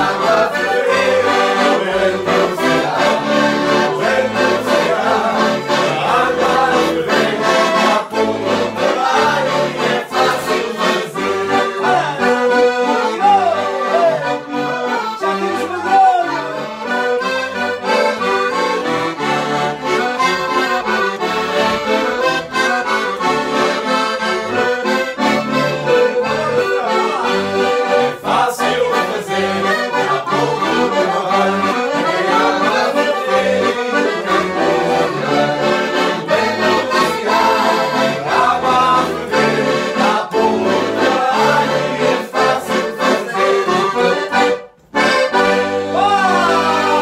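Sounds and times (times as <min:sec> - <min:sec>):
accordions playing folk music: 0:00.0 - 0:47.0.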